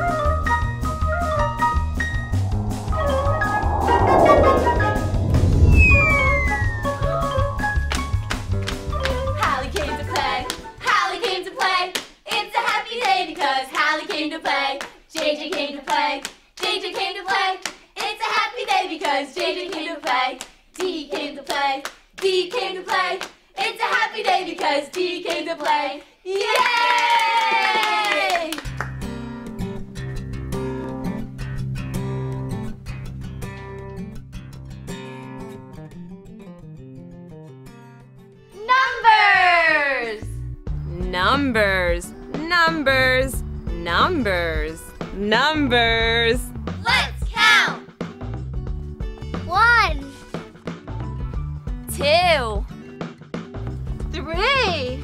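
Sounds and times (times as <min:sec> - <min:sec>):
instrumental music with bass line: 0:00.0 - 0:09.5
long falling glide: 0:02.0 - 0:07.5
sharp claps: 0:11.6 - 0:13.2
sung vocal phrases: 0:40.9 - 0:46.5.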